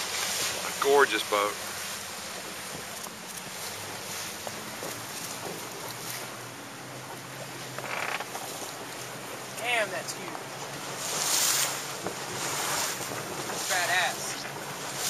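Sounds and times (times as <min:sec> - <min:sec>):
water around a boat: 0:00.0 - 0:15.0
wind: 0:00.0 - 0:15.0.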